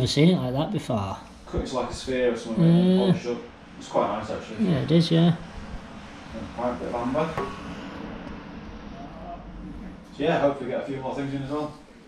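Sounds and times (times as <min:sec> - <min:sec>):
low steady rumble: 0:01.2 - 0:12.0.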